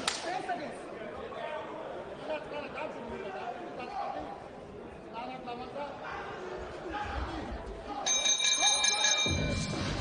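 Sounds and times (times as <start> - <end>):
crowd noise: 0.0 - 10.0
boxing ring bell ringing: 8.1 - 10.0.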